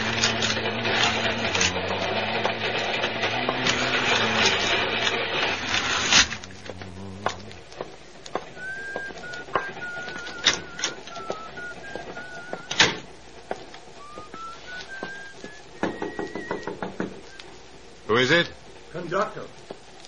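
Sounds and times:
rhythmic mechanical clatter: 0.0s - 20.0s
person whistling a tune: 8.5s - 13.0s, 14.0s - 17.5s.

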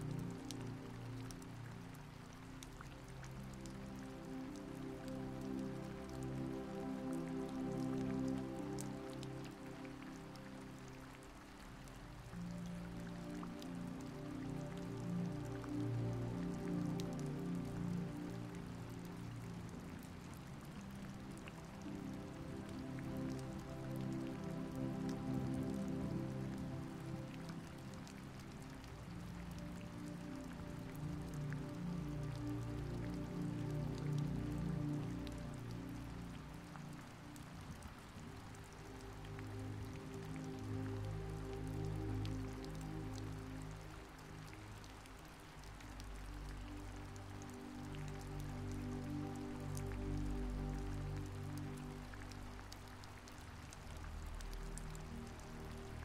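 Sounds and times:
soft background music: 0.0s - 56.0s
steady rain: 0.0s - 56.0s.

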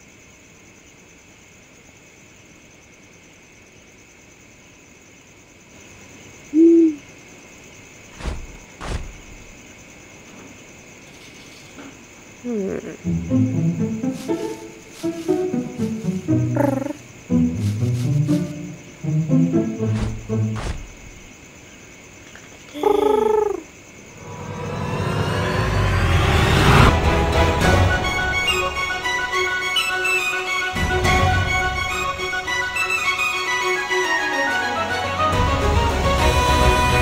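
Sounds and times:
faint steady hiss: 0.0s - 25.6s
owl hoot: 6.5s - 7.1s, 16.3s - 17.1s, 22.7s - 23.7s, 29.6s - 30.6s
cartoon bird cry: 16.4s - 17.1s, 22.7s - 23.6s
rising swell of sound: 24.1s - 27.6s.

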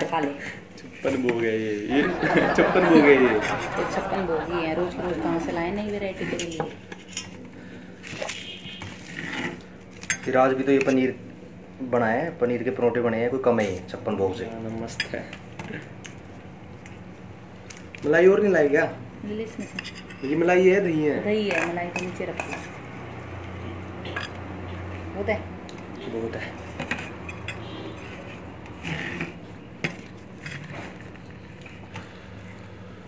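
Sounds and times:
steel plates and cutlery clinking: 26.8s - 28.4s.

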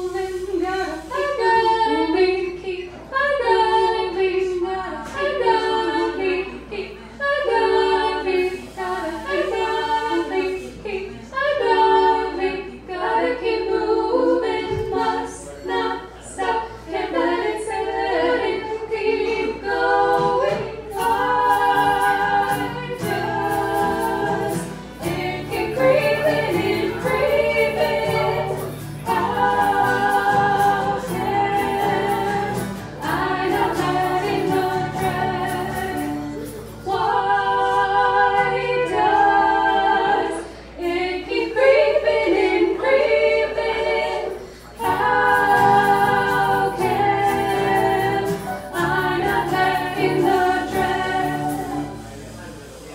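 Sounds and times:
women singing in harmony: 0.0s - 52.4s
acoustic guitar: 0.0s - 52.9s.

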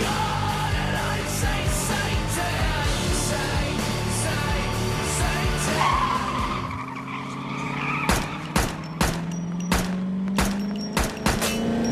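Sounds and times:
rock music: 0.0s - 6.8s
car tyres squealing: 5.6s - 11.9s
pistol shots: 8.1s - 11.6s.

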